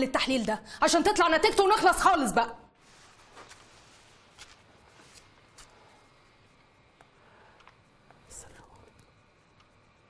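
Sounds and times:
breathy hiss: 4.8s - 9.4s
woman whispering: 8.1s - 9.2s.

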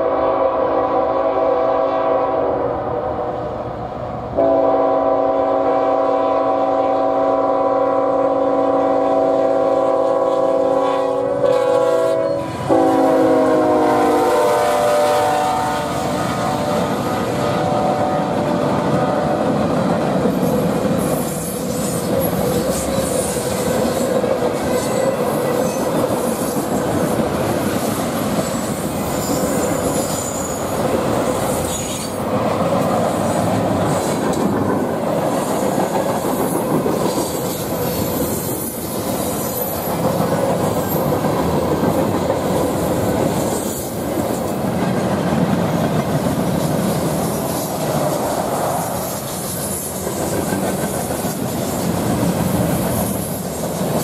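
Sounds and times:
train clickety-clack on rails: 3.7s - 54.0s
wheel squeal: 28.4s - 30.7s.

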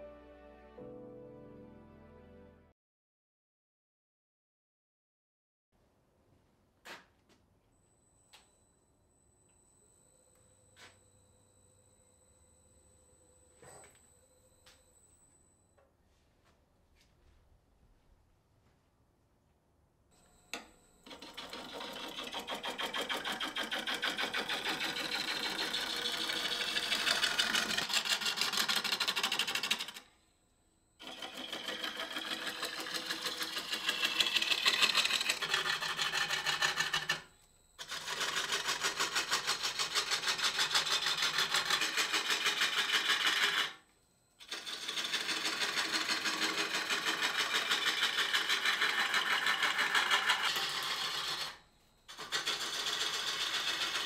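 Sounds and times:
wood lathe cutting chatter: 20.5s - 30.2s, 31.0s - 43.8s, 44.4s - 54.0s.

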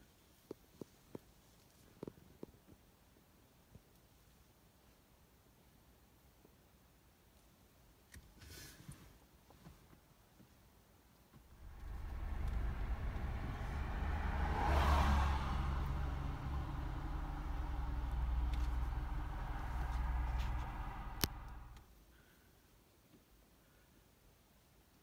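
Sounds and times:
tyre noise rush: 11.5s - 21.8s
vehicle engine running: 11.5s - 21.8s.

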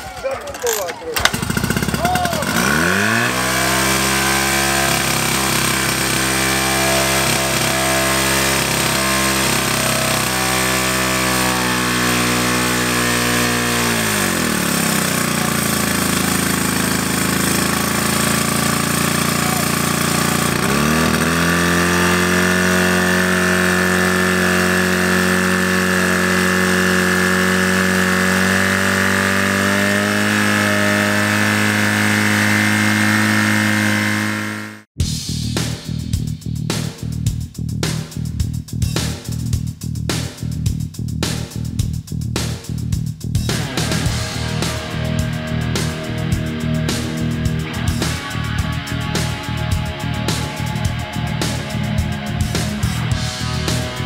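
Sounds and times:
fire pump engine running hard: 0.0s - 34.9s, 43.6s - 54.0s.

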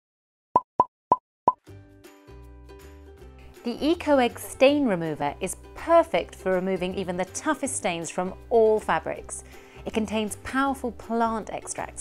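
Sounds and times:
soft background music: 1.7s - 12.0s.

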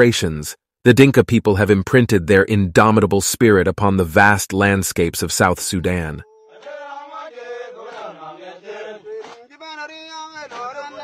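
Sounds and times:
voices singing a chant: 6.0s - 11.0s.

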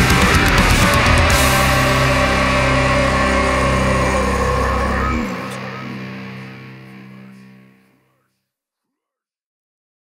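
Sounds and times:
distorted guitar and bass chord ringing: 0.0s - 8.1s.

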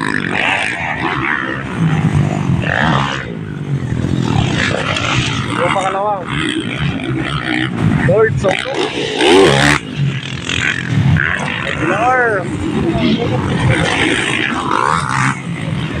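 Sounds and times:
dirt bike engines revving: 0.0s - 16.0s
spectators' voices: 0.0s - 16.0s.

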